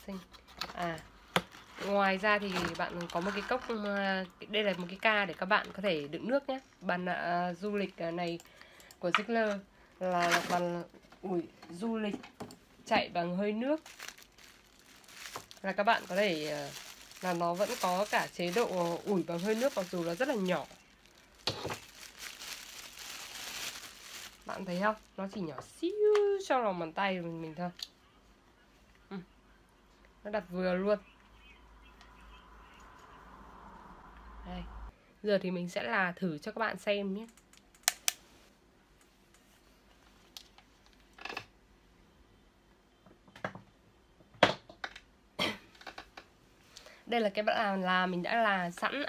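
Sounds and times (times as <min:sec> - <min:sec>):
plastic bag crinkling: 0:01.8 - 0:06.0, 0:10.0 - 0:10.9, 0:13.6 - 0:25.3
cloth rustling: 0:13.7 - 0:25.2.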